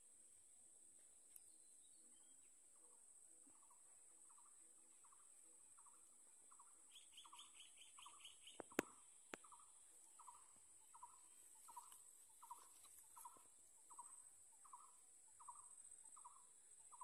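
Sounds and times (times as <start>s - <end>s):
small birds calling: 1.4s - 17.0s.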